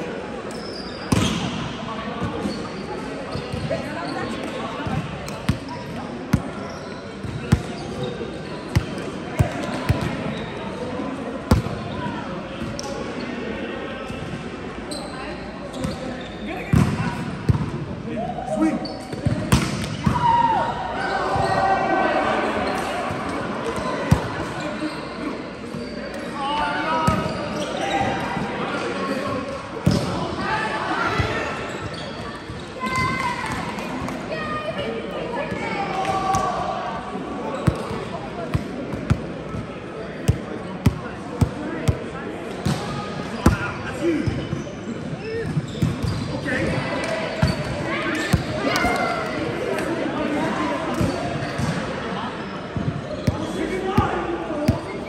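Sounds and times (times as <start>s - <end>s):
volleyball slaps: 19.2s - 20.2s.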